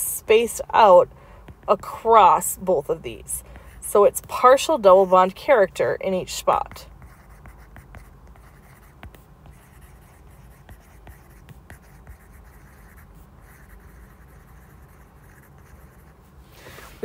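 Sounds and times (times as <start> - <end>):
low background hum: 0.0 - 17.0
stylus scratching on tablet screen: 0.1 - 16.3.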